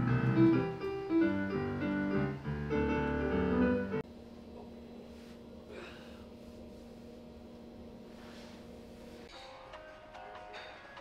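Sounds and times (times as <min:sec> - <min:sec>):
grand piano melody: 0:00.0 - 0:04.0.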